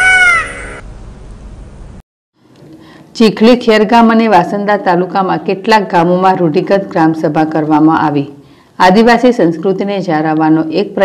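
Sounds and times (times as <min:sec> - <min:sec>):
animal cry: 0:00.0 - 0:00.8.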